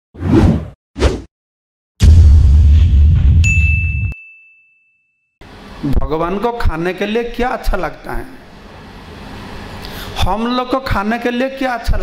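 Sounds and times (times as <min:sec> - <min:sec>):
heavy hit with deep boom: 0:02.0 - 0:03.5
high clear ding: 0:03.4 - 0:05.2.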